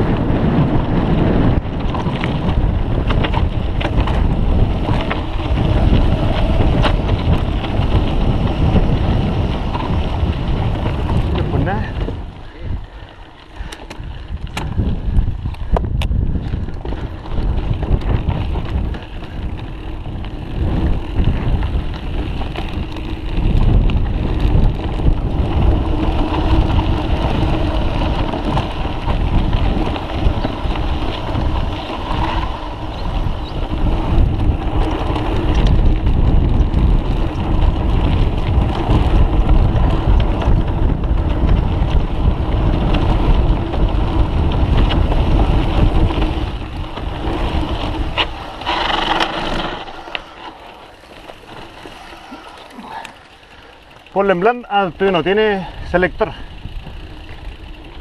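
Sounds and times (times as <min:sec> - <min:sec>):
bike rattling over rough terrain: 0:00.0 - 0:58.0
wind buffeting microphone: 0:00.0 - 0:58.0.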